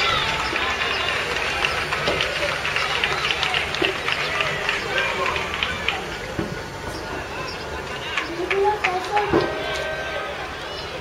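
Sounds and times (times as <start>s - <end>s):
crowd of voices shouting: 0.0s - 11.0s.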